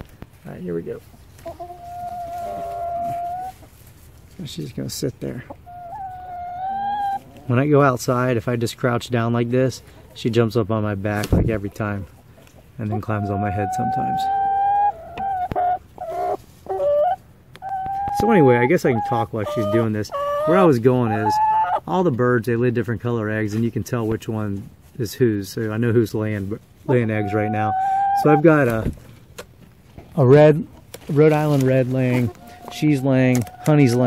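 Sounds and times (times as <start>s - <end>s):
hen calling: 1.4s - 3.7s, 5.4s - 7.7s, 11.6s - 21.9s, 26.8s - 28.6s, 31.3s - 34.0s.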